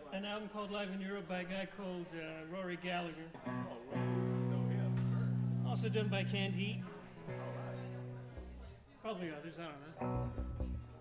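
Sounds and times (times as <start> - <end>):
guitar chords ringing: 3.4 - 8.7, 10.0 - 11.0.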